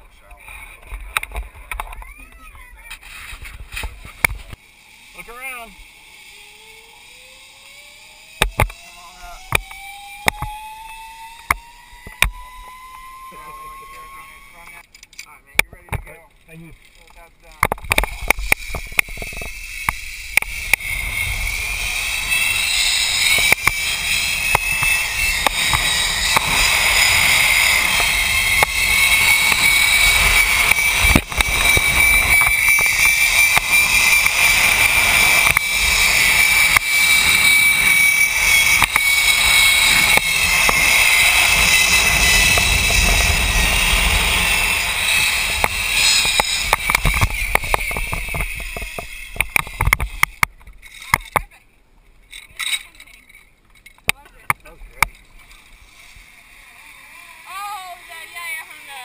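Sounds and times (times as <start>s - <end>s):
zipline pulleys whining on cable: 0.6s - 14.9s, 16.6s - 51.4s, 55.0s - 59.0s
wind on microphone: 17.8s - 51.3s.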